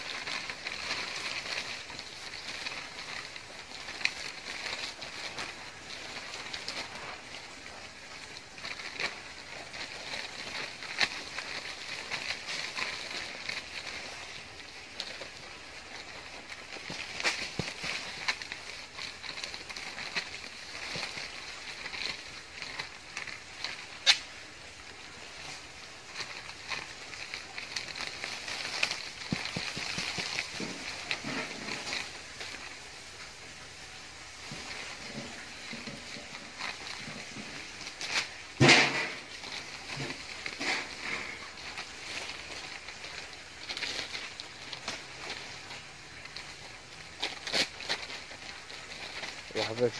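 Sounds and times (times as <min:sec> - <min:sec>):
soil pressed by hand: 0:00.0 - 0:43.6
plastic bag crinkling: 0:00.0 - 0:49.9
small crackles: 0:00.0 - 0:49.9.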